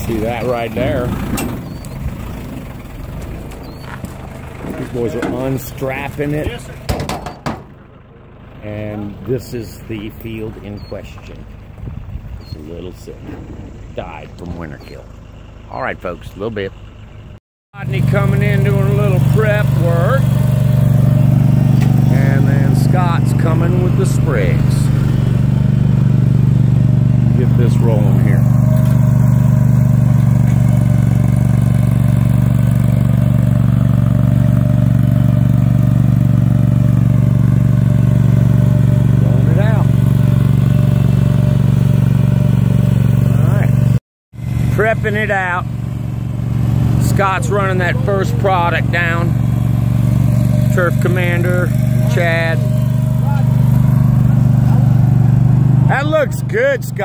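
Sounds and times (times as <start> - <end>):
small engine running steadily: 0.0 - 57.0.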